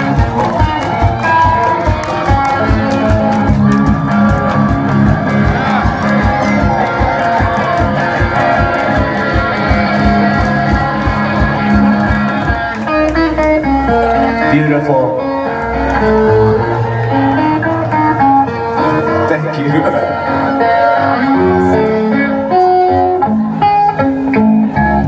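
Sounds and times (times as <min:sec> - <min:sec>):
electric guitar playing: 0:00.0 - 0:25.0.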